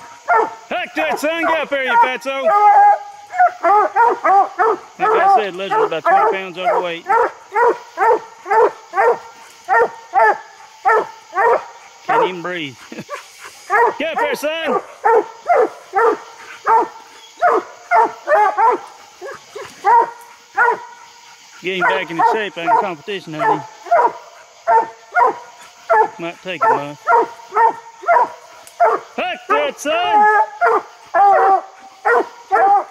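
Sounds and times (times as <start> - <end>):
hound barking: 0.0 - 32.9.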